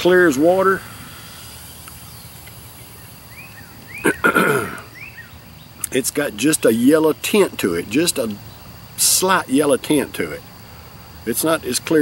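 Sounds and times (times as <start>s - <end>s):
bird chirps: 0.0s - 6.0s
man clearing throat: 4.0s - 4.9s.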